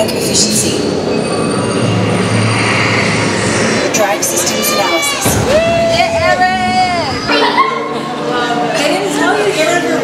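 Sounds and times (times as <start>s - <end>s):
low hum: 5.2s - 8.2s.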